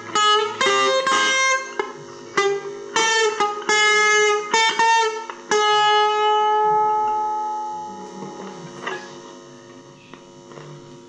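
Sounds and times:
electric guitar chord ringing: 0.0 - 11.0
guitar amplifier mains hum: 0.0 - 11.0.

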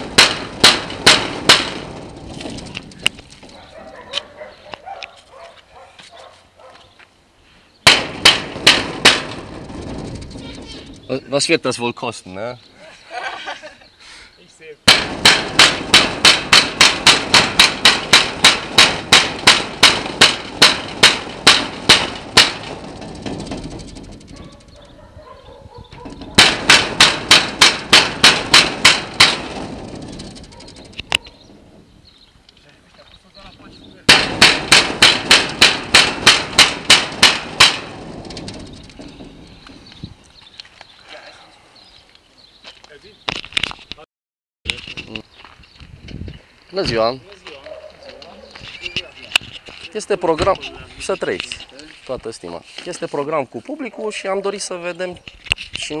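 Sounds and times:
banging on metal gate: 0.0 - 2.7, 7.8 - 11.5, 14.9 - 32.4, 33.4 - 40.2
gate rattling: 0.0 - 4.4, 7.9 - 11.6, 14.9 - 40.3.

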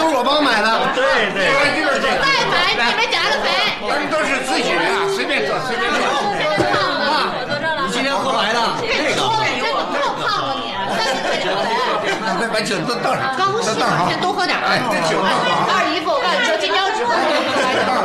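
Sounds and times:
people chattering: 0.0 - 18.0.

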